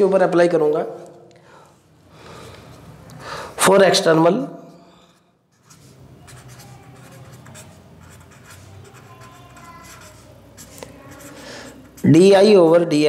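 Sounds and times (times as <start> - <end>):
pen scratching on paper: 5.5 - 12.5.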